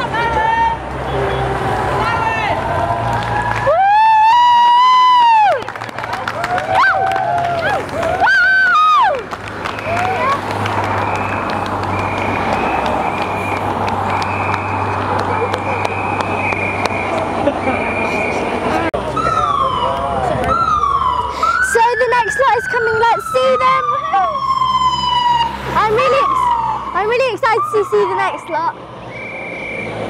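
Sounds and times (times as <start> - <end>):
vehicles passing: 0.0 - 30.0
police siren wailing: 1.2 - 30.0.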